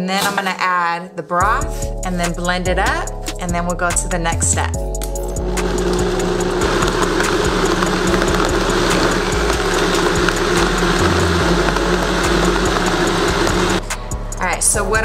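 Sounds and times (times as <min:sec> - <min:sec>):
blender running: 0:05.4 - 0:13.9.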